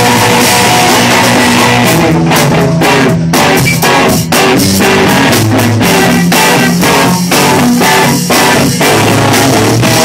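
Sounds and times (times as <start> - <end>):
drum kit steady beat: 0.0 - 10.0
electric bass: 0.0 - 10.0
electric guitar: 0.0 - 10.0.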